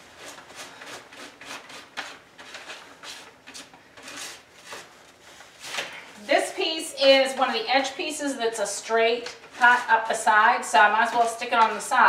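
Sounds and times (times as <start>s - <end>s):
spatula scraping paste on paper: 0.2s - 4.9s, 9.2s - 11.9s.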